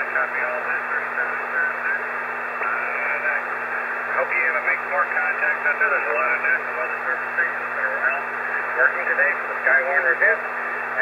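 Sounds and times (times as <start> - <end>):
radio receiver hiss: 0.0 - 11.0.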